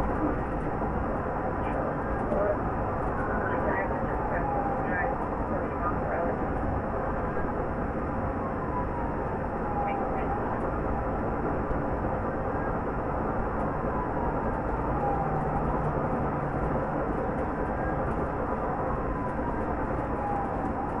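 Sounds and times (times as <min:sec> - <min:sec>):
car driving at highway speed: 0:00.0 - 0:21.0.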